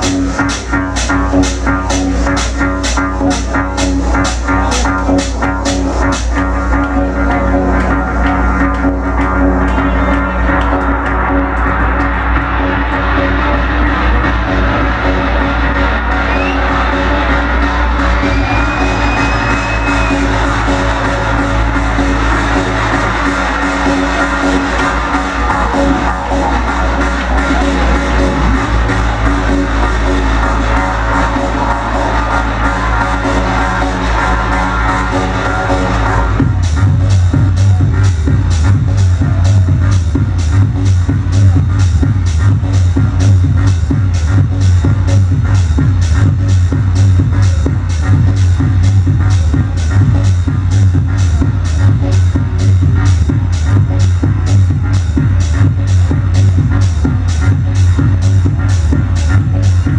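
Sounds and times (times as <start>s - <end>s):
deep bass line: 0.0s - 59.9s.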